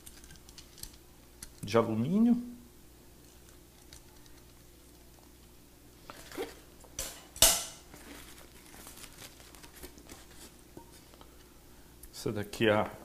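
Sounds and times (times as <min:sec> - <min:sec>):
packing rustling and clicking: 0:07.9 - 0:11.1.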